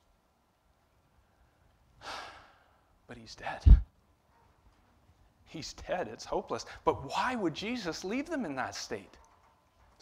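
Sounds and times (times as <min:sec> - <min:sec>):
man breathing: 0:01.2 - 0:02.9.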